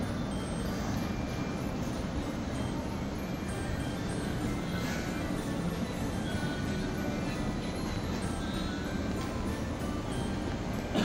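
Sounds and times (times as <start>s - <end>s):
low indoor ambient rumble: 0.0s - 11.0s.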